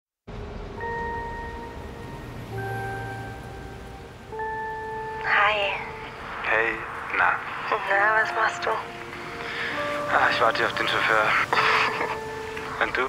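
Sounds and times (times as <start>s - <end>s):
soft sustained chime notes: 0.3s - 6.9s
bus interior rumble: 0.3s - 13.0s
person speaking: 5.2s - 13.0s.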